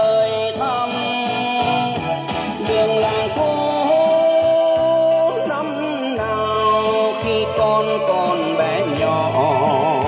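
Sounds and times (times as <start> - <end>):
song from cassette loudspeaker: 0.0 - 10.0.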